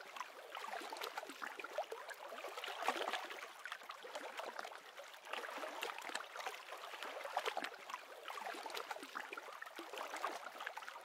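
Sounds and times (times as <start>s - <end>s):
small waves lapping: 0.0s - 11.0s.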